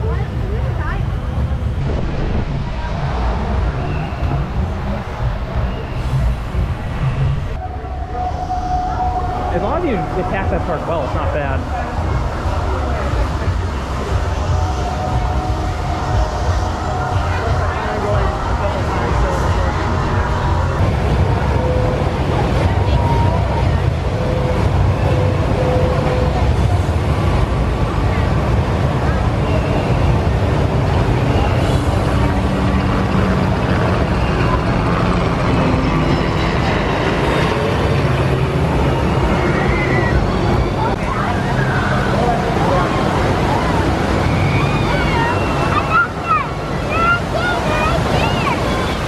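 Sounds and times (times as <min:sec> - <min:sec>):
churning whitewater: 0:00.0 - 0:49.0
people's voices and shouts: 0:00.0 - 0:49.0.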